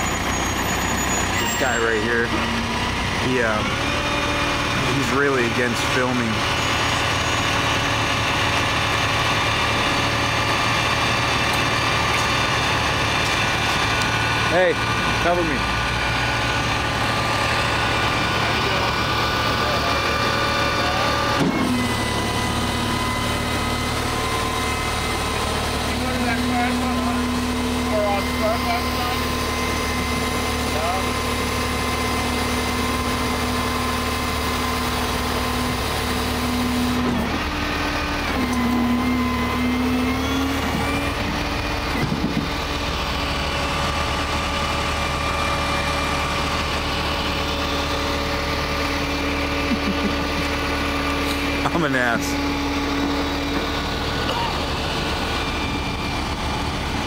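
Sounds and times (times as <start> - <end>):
truck engine idling: 0.0 - 57.0.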